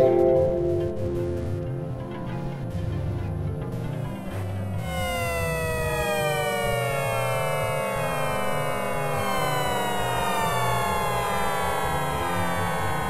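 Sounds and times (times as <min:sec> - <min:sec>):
choppy low bass pattern: 0:00.0 - 0:08.4
gliding synthesizer tones: 0:00.0 - 0:13.0.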